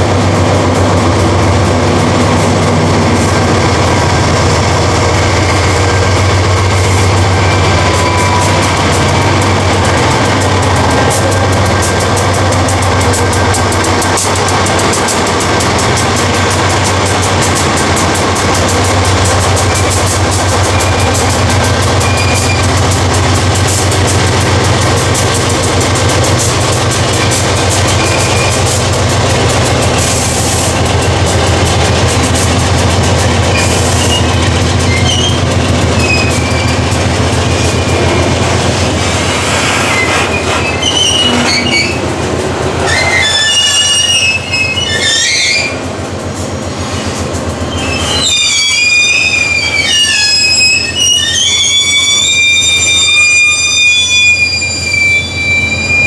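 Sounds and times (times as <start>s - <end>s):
diesel locomotive engine drone: 0.0s - 56.0s
rolling stock going by: 0.0s - 56.0s
train wheels squealing: 3.3s - 29.1s, 30.4s - 42.1s, 42.8s - 45.9s, 46.6s - 56.0s.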